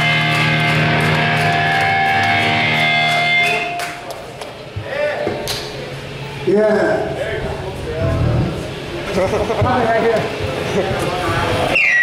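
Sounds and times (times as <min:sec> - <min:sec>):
electric guitar chord ringing: 0:00.0 - 0:04.1
people talking: 0:04.8 - 0:11.8.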